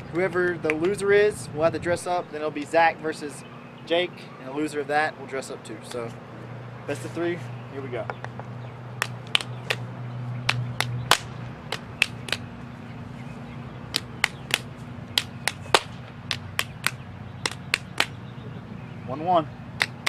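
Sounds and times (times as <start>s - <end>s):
fists slapping into palms: 8.1s - 12.5s, 13.9s - 18.2s, 19.8s - 20.0s.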